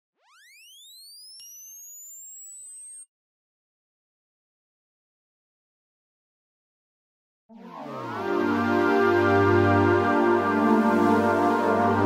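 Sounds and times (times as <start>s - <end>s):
rising synthesized tone: 0.2s - 3.0s, 7.5s - 12.0s.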